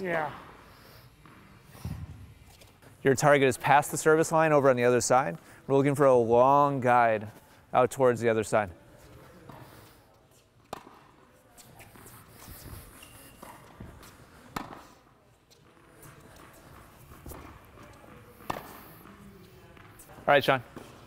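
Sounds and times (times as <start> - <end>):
court sounds: 0.0 - 21.0
tennis balls struck by racquets: 10.6 - 21.0.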